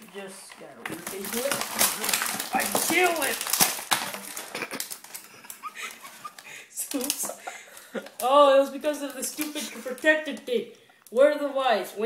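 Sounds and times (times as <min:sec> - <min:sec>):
cards and deck box rustling: 0:00.0 - 0:10.5.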